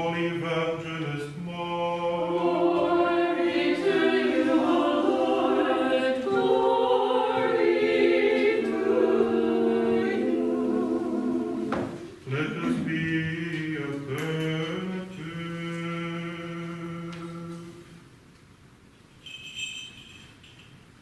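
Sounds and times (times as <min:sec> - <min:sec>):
choir chanting: 0:00.0 - 0:17.9.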